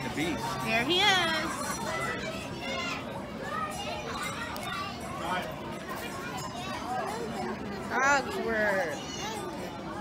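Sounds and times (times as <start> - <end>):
children and people talking: 0.0 - 10.0.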